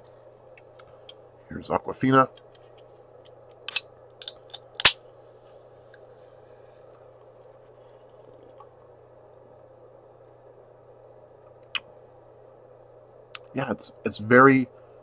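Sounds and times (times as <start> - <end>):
room hum: 0.0 - 15.0
can opening pop: 3.7 - 5.0.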